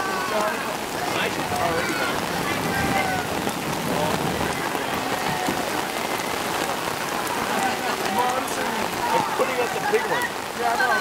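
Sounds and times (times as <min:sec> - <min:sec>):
rain pouring on wet street: 0:00.0 - 0:11.0.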